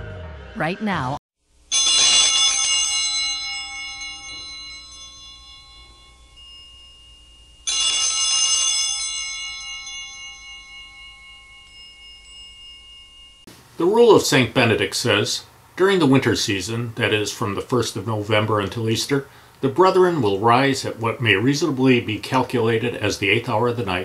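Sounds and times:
metal hand bell ringing: 1.7 - 13.5.

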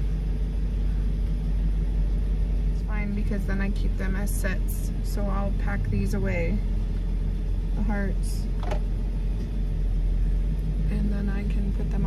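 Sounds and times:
vehicle idling rumble: 0.0 - 12.0.

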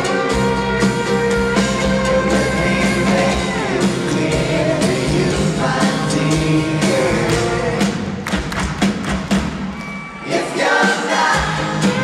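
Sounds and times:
electric guitars: 0.0 - 8.2
rock band playing: 0.0 - 12.0
steady drum beat: 0.4 - 12.0.

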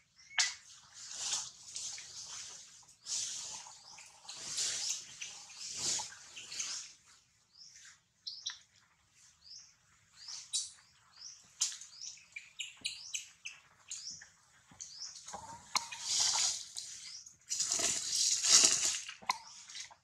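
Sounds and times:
rustling noise: 0.6 - 12.0, 12.7 - 20.0.

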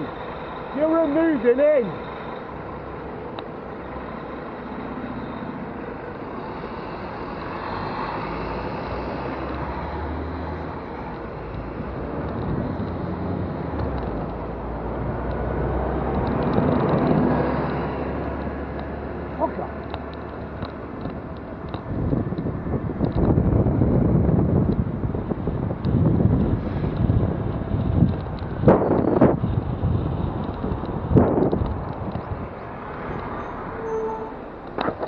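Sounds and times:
bus engine running: 0.0 - 35.0
road traffic noise: 0.0 - 35.0.

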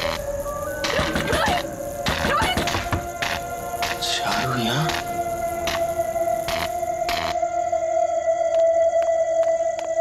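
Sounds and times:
suspense drone tone: 0.0 - 10.0.

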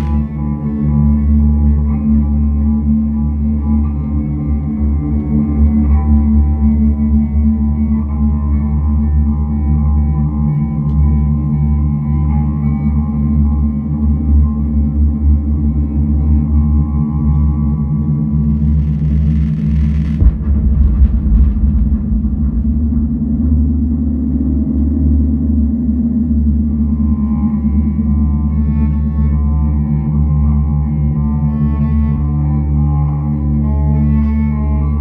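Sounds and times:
bowed cello: 0.0 - 35.0
synthesizer drones: 0.0 - 35.0
deep bass hit: 18.5 - 26.6.

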